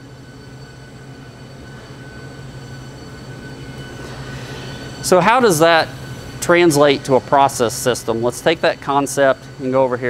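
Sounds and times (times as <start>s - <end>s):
faint high whine: 0.0s - 10.0s
low mechanical hum: 0.0s - 10.0s.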